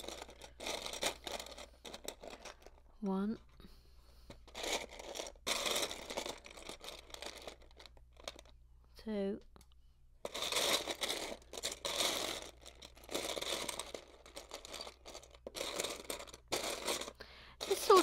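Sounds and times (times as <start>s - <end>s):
plastic pieces rattling: 0.0s - 2.9s, 4.3s - 8.6s, 10.2s - 18.0s.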